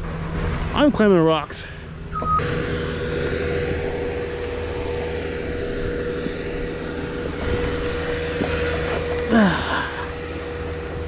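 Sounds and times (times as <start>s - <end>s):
steady whining tone: 0.0s - 11.0s
truck engine running: 0.0s - 11.0s.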